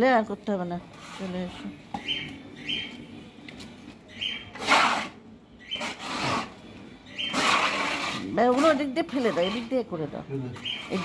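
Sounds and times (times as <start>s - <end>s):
high bird chirps: 2.0s - 3.1s, 4.1s - 4.6s, 5.5s - 6.0s, 7.0s - 7.4s, 10.6s - 11.0s
brush scrubbing wet concrete: 7.2s - 9.9s, 10.6s - 11.0s.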